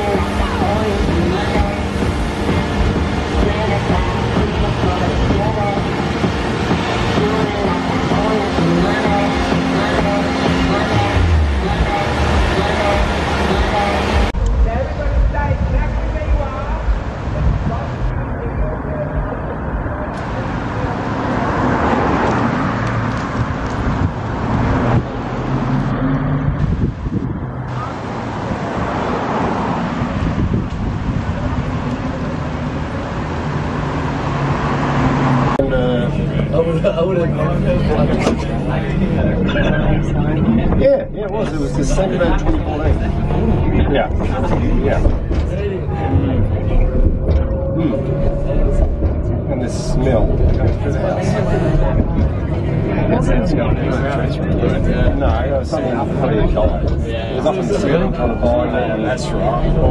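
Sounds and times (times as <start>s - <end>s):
fairground din: 0.0s - 59.9s
ride machinery running: 0.0s - 59.9s
road noise: 0.0s - 59.9s
vehicle engines humming: 0.0s - 59.9s.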